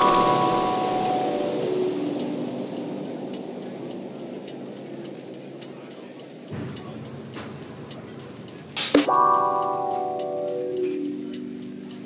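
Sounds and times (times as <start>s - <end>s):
quiet background music: 0.0s - 12.0s
ticking percussion: 0.0s - 12.0s.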